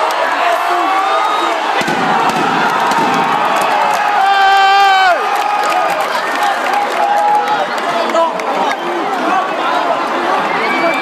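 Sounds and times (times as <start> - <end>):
crowd shouting and cheering: 0.0 - 11.0
long held shout: 4.1 - 5.9.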